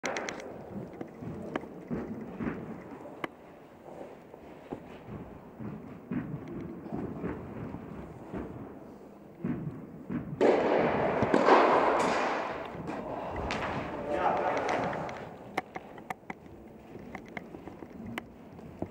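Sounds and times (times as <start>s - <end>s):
ball bouncing in hall: 0.0s - 18.9s
racket striking tennis ball: 9.4s - 15.8s.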